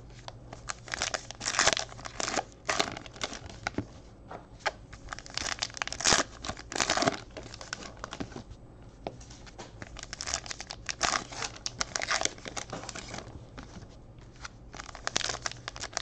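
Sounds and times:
card wrappers crinkling and tearing: 0.6s - 3.8s, 4.6s - 8.3s, 9.8s - 16.0s.

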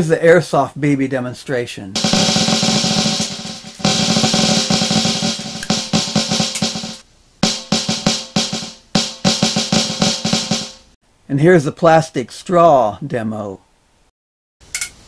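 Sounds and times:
electronic snare drum roll: 2.0s - 11.0s.

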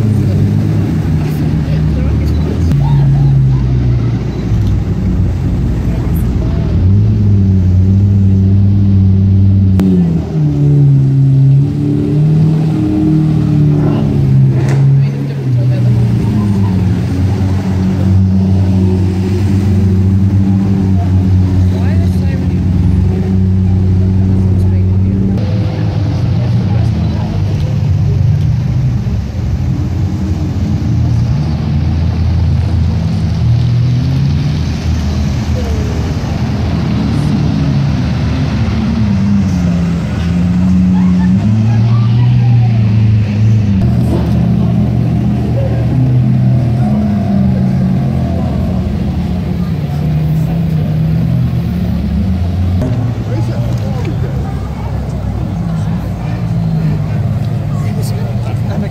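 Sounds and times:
car engines driving slowly past: 0.0s - 58.9s
engine revving: 0.0s - 58.9s.

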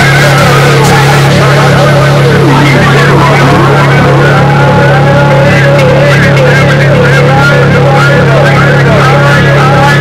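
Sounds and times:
distorted low drone: 0.0s - 10.0s.

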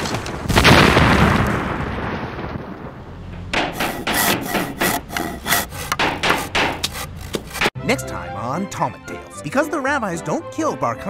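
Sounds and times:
hammering on wood: 3.4s - 7.7s.

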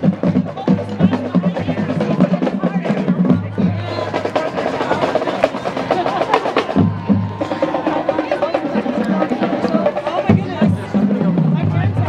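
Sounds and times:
crowd chatter: 0.0s - 12.0s
pitched bass drums: 0.0s - 12.0s.

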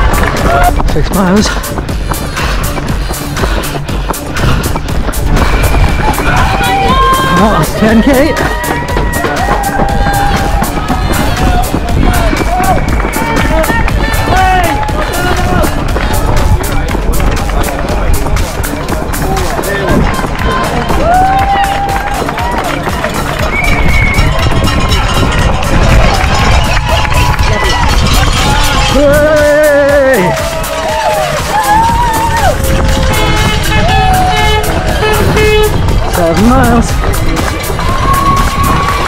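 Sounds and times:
runner's footfalls: 0.0s - 29.4s, 30.2s - 39.0s
music: 0.0s - 39.0s
spectators' voices: 0.0s - 39.0s.

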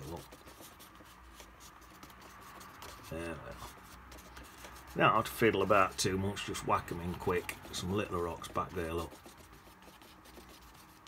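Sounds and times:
painting tool scratching on paper: 0.0s - 11.0s.

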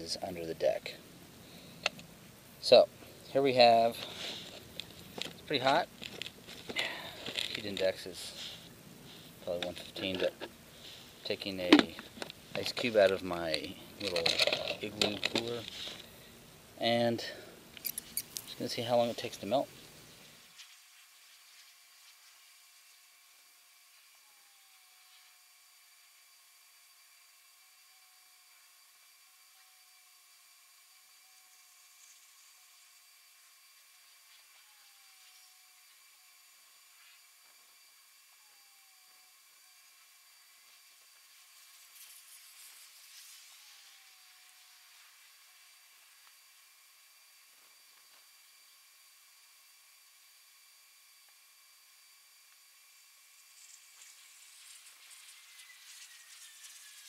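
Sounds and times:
faint high whine: 0.0s - 57.0s
faint steady hiss: 0.0s - 57.0s.

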